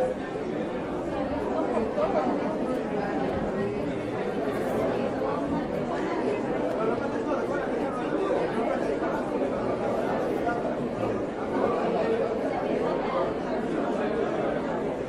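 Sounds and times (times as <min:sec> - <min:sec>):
chatter of many voices: 0:00.0 - 0:15.0.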